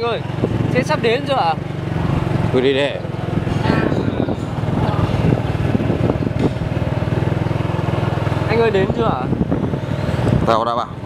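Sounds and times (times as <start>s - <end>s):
motorbike engine running: 0.0s - 11.0s.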